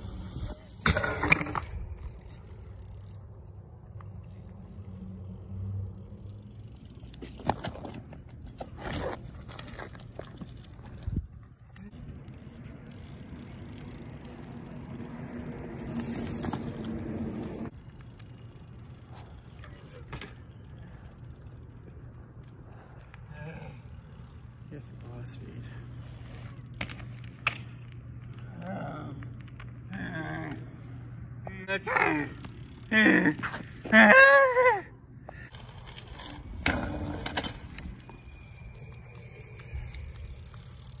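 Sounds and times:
bike tyres rumbling on asphalt: 0.0s - 41.0s
light bike clicks: 9.7s - 23.3s.

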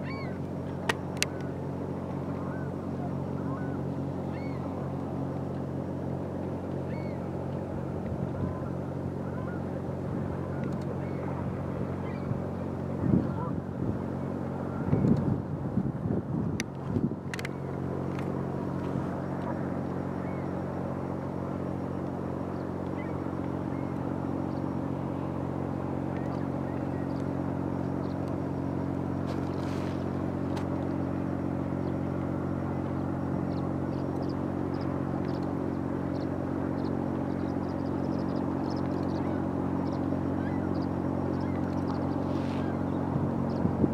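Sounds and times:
ship engines droning: 0.0s - 43.9s.

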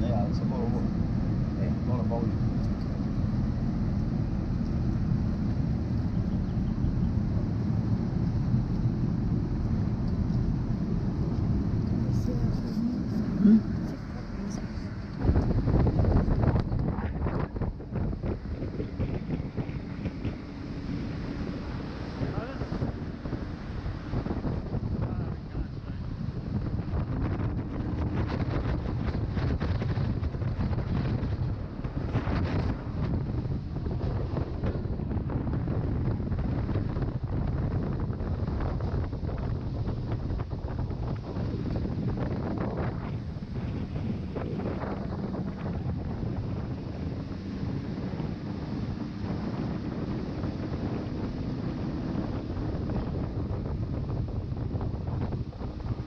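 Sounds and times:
boat engine drone: 0.0s - 56.0s
wind buffeting microphone: 0.0s - 56.0s.

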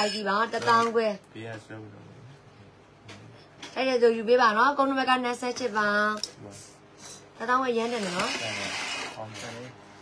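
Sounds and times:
tray of glasses scraping: 7.8s - 9.8s.

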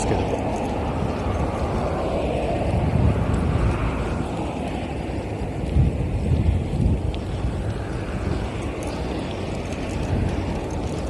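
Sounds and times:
cars passing: 0.0s - 11.0s
wind buffeting microphone: 0.0s - 11.0s.

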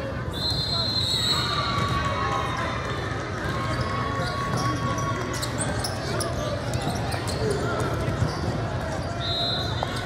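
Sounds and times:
basketballs bouncing on court: 1.5s - 9.1s.

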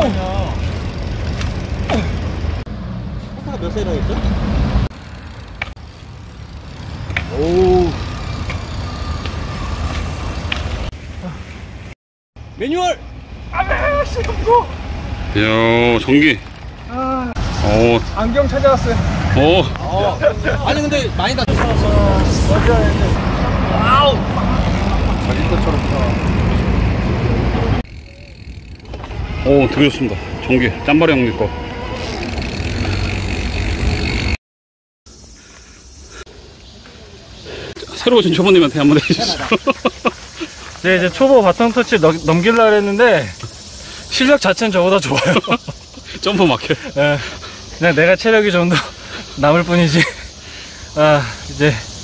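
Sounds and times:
bikes rolling over paving stones: 0.0s - 2.6s, 3.2s - 11.3s, 13.6s - 18.4s, 19.4s - 23.0s, 23.9s - 31.0s, 31.9s - 34.4s, 37.5s - 51.8s.

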